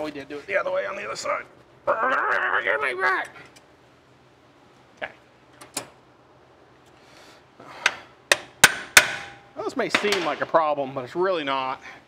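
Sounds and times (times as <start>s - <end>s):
hammer striking metal: 8.3s - 10.5s.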